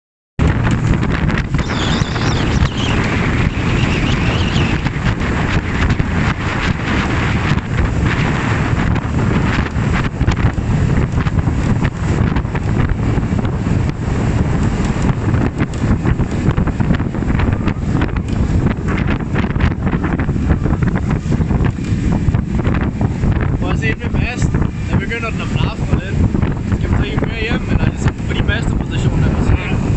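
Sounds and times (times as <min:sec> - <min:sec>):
rushing water: 0:00.4 - 0:29.9
wind buffeting microphone: 0:00.4 - 0:29.9.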